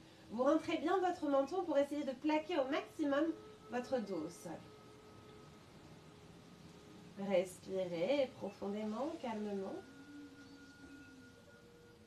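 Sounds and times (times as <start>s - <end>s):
faint steady held tones: 0.0s - 12.0s.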